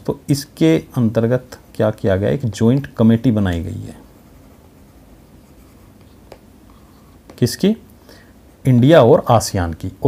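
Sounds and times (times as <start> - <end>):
stylus scratching on tablet: 3.6 - 7.6.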